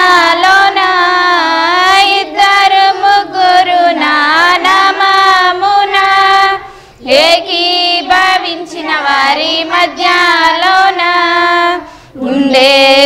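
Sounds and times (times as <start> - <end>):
group singing a hymn: 0.0 - 13.0.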